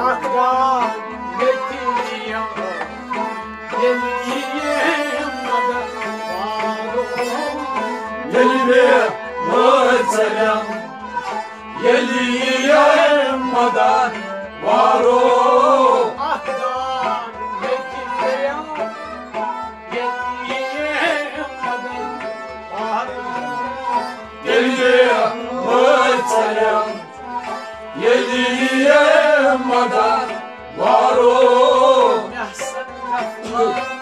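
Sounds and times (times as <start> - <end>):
men singing chant-like song: 0.0 - 22.0, 22.7 - 34.0.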